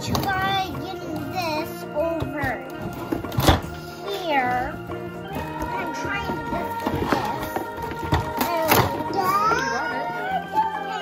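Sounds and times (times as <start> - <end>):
background music with melody: 0.0 - 11.0.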